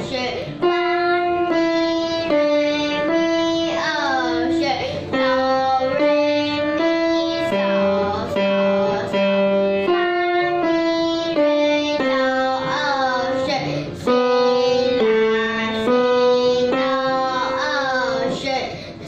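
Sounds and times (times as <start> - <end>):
girl singing: 0.0 - 19.0
grand piano: 0.0 - 19.0.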